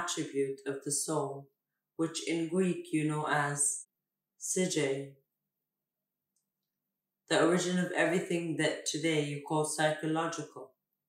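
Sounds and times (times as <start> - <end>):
narrator speaking: 2.0 - 3.8, 4.4 - 5.1.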